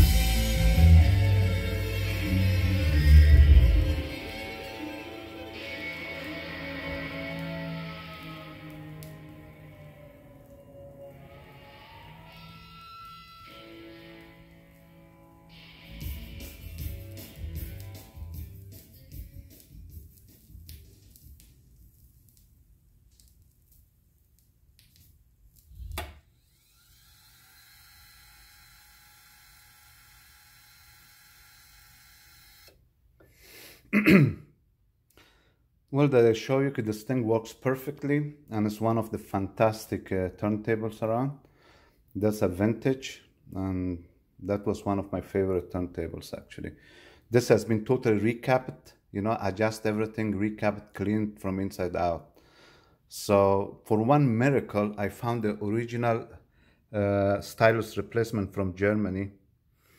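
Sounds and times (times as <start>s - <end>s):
rock guitar chord ringing out: 0.0s - 17.7s.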